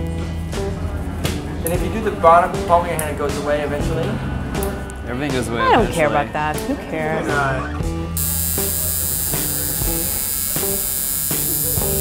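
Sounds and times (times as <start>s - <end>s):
tattoo machine buzzing: 8.2s - 12.0s.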